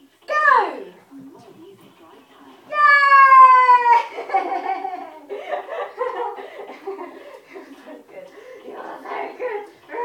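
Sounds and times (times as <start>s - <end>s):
excited chatter: 0.4s - 10.0s
laughter: 4.0s - 8.3s.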